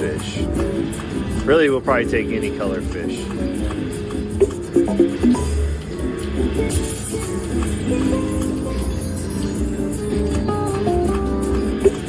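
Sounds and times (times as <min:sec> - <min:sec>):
slot machine game music: 0:00.0 - 0:12.0.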